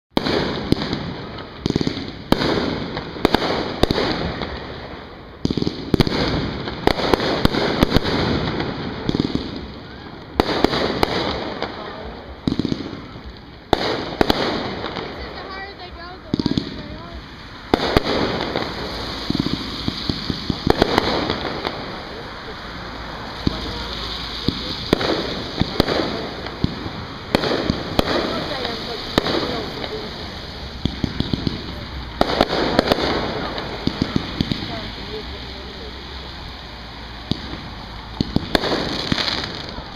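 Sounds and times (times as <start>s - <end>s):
fireworks bursting: 0.1s - 39.9s.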